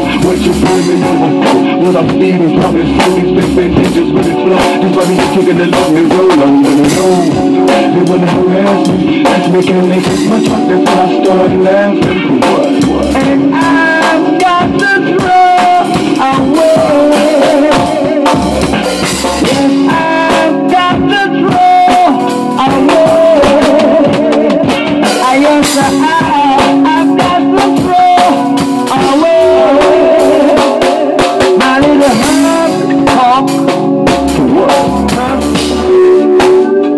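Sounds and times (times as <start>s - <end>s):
guitar: 0.0s - 36.9s
melody line: 0.0s - 36.9s
reggae drum beat: 0.0s - 36.9s.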